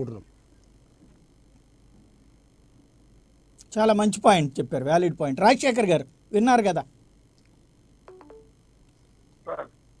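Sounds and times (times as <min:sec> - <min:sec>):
short electronic tones: 0:08.1 - 0:08.6.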